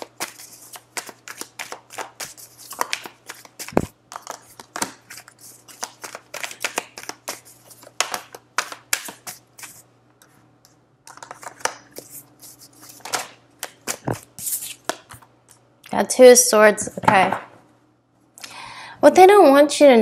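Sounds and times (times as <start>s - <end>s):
cards being shuffled: 0.0s - 9.9s, 11.1s - 15.6s.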